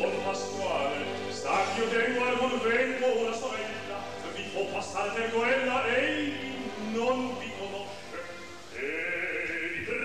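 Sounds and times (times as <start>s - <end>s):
operatic voice singing recitative: 0.0s - 10.0s.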